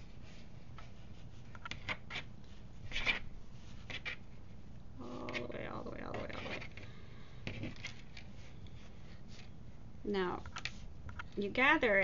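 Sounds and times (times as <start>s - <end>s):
fabric rustling and rubbing: 0.0s - 4.6s.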